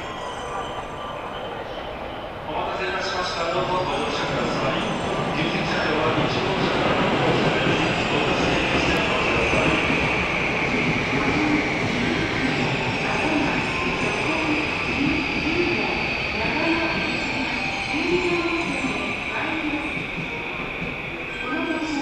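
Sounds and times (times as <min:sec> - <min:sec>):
electric train whine: 0:00.0 - 0:22.0
rail and station noise: 0:00.0 - 0:22.0.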